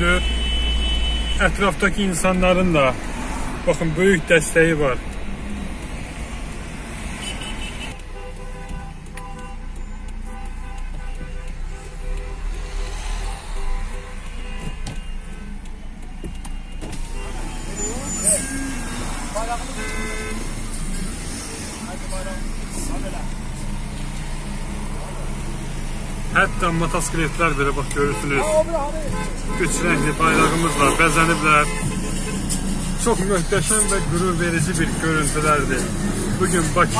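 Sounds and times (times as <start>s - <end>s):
car horns honking: 0.0s - 5.8s, 6.7s - 36.9s
street traffic: 0.0s - 36.9s.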